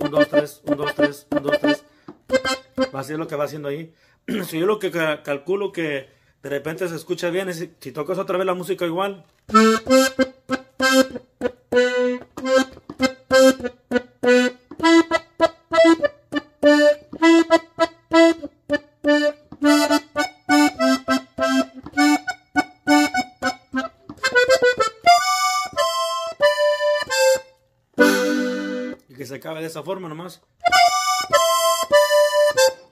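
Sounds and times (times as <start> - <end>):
button accordion melody: 0.0 - 3.4, 9.5 - 29.1, 30.6 - 32.9.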